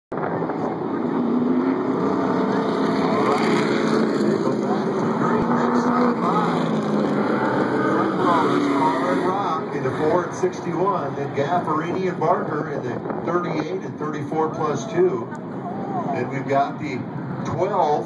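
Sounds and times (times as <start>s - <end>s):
race car engines running: 0.1s - 18.0s
faint announcer voice: 13.4s - 16.8s.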